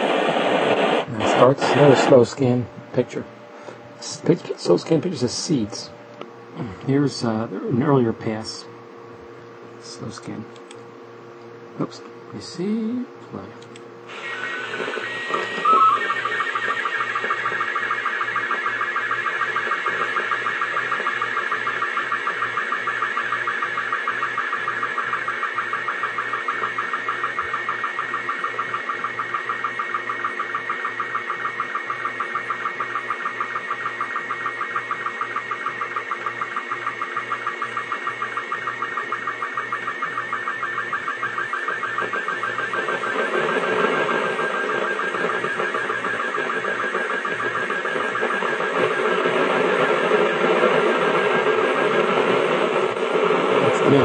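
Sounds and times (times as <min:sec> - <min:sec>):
warbling radio tone: 0:00.0 - 0:03.2, 0:14.1 - 0:54.0
line-sync pulses: 0:00.0 - 0:03.4, 0:04.0 - 0:06.0, 0:14.0 - 0:54.0
receiver hiss: 0:00.0 - 0:06.0, 0:11.8 - 0:54.0.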